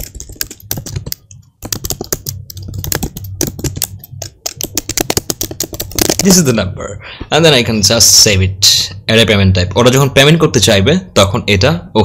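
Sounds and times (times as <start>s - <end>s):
typing on computer keyboard: 0.0s - 6.4s.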